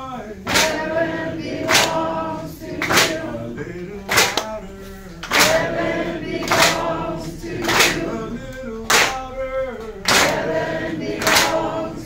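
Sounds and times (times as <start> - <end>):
group singing call and response: 0.0 - 12.0.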